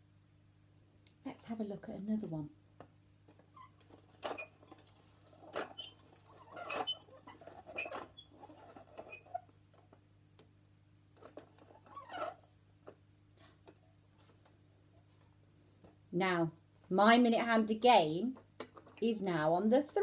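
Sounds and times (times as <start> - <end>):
faint low hum: 0.0 - 20.0.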